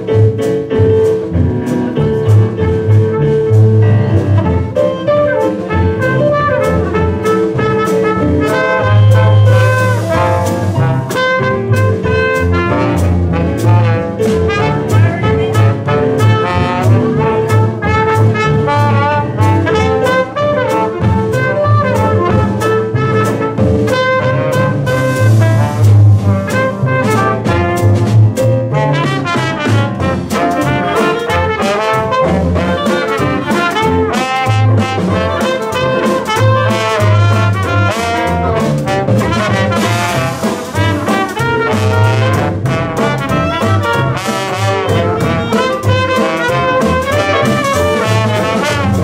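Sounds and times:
dixieland jazz band playing: 0.0 - 49.0
clarinet playing: 4.2 - 28.0, 28.7 - 49.0.

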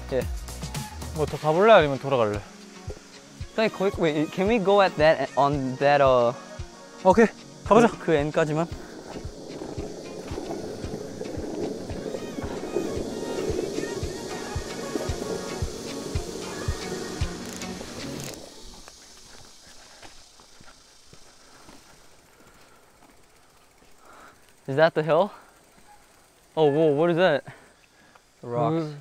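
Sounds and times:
skateboard wheels rolling on asphalt: 7.1 - 24.9.

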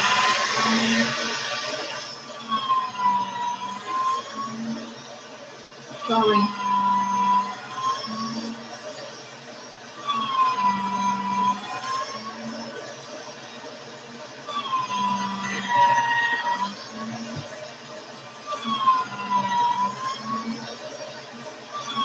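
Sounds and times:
siren wailing: 2.4 - 4.8, 6.0 - 8.6, 10.0 - 12.6, 14.5 - 17.5, 18.4 - 20.8, 21.7 - 22.0.

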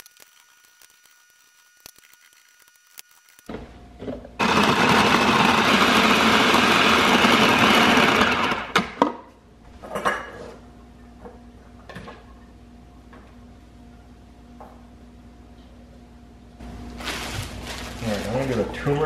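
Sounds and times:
food processor running: 4.4 - 9.1.

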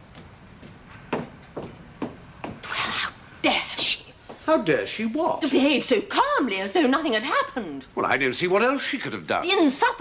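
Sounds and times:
footsteps on hard floor: 0.1 - 2.9.

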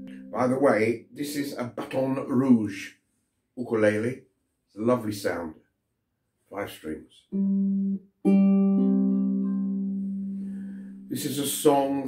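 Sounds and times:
ukulele chords strummed: 0.0 - 0.9, 7.3 - 11.5.

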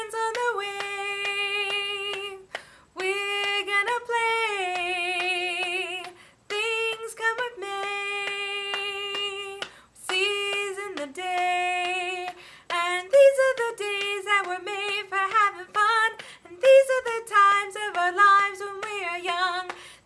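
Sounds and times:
woman singing unaccompanied: 0.0 - 20.0.

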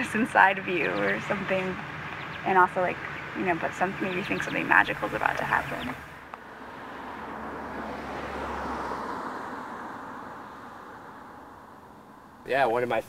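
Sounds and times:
car passing: 0.0 - 13.0.

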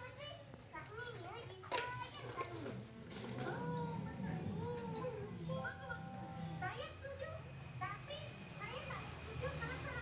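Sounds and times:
children chattering and squealing: 1.8 - 7.5.

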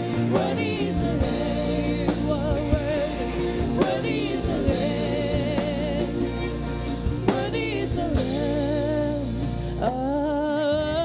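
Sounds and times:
band with violin: 0.0 - 9.7
person singing with vibrato: 0.0 - 11.0.

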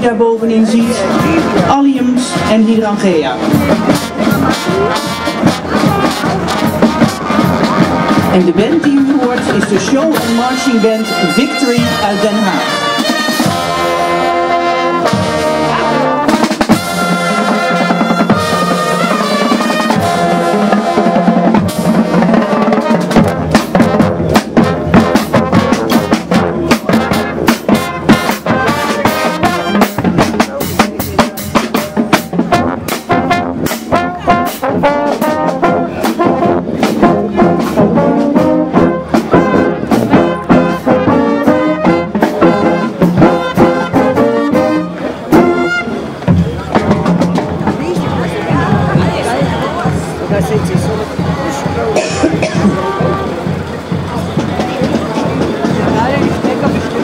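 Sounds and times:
brass instruments playing: 0.0 - 57.0
snare and bass drums: 0.8 - 57.0.

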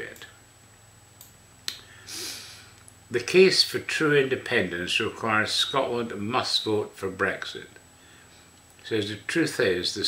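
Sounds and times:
man inhaling: 1.8 - 2.8.

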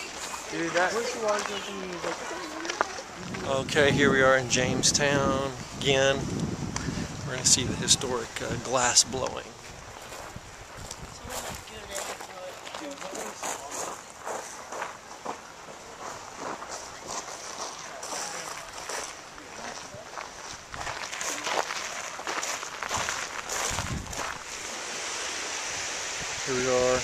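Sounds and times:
footsteps: 0.0 - 4.2, 8.4 - 24.9.

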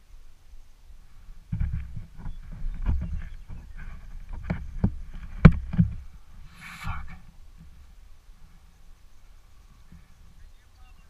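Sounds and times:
parachute gear rustling and knocking: 1.5 - 6.2.

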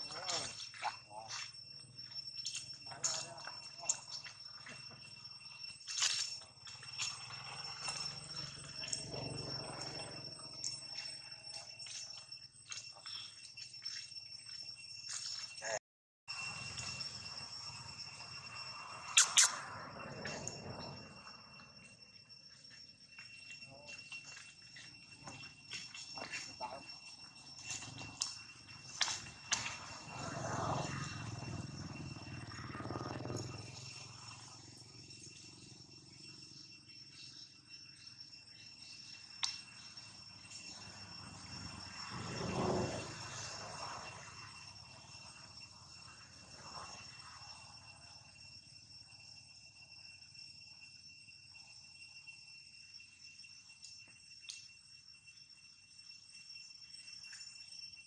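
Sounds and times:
insects buzzing: 0.0 - 58.0.

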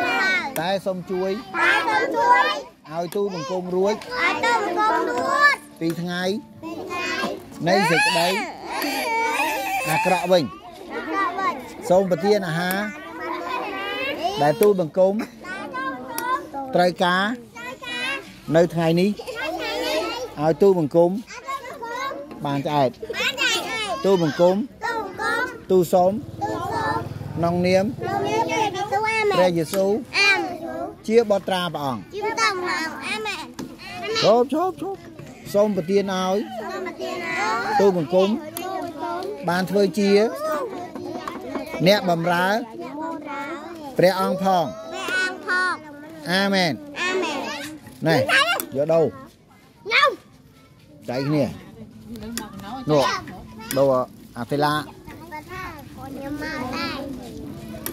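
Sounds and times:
women and children shouting: 0.0 - 0.5, 1.2 - 2.8, 7.6 - 12.5, 26.2 - 29.5
children's voices holding notes: 0.0 - 51.6, 54.9 - 57.9.

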